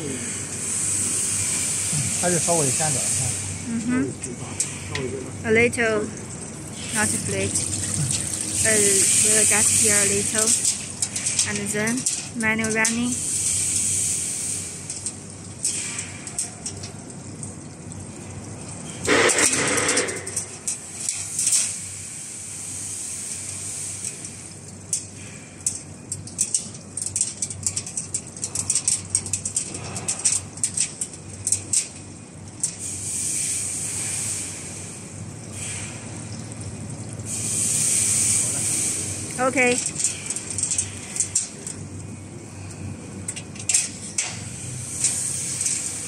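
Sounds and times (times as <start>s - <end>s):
machinery hiss: 0.0s - 6.0s, 6.7s - 16.4s, 19.0s - 25.6s, 32.7s - 36.5s, 37.2s - 41.5s, 44.3s - 46.0s
loud noisy burst: 19.1s - 20.4s
metallic wire clicks and rattles: 24.9s - 32.8s, 39.7s - 41.8s, 43.3s - 44.4s.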